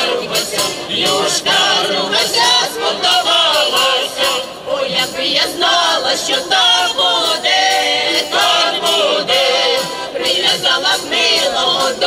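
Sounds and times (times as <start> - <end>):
mixed choir singing a folk song: 0.0 - 12.0.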